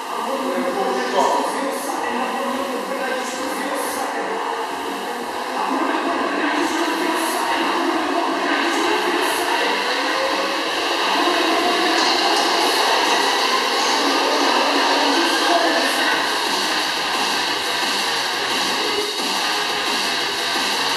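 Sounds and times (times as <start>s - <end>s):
rowing machine flywheel whirring: 0.2s - 20.9s.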